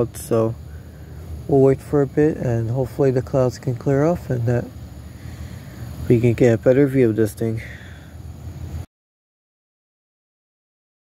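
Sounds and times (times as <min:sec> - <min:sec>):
low background hum with hiss: 0:00.0 - 0:08.9.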